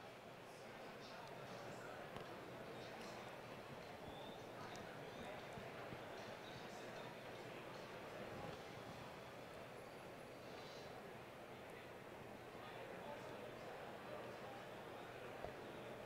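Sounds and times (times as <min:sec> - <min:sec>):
indistinct distant voices: 0:00.0 - 0:16.0.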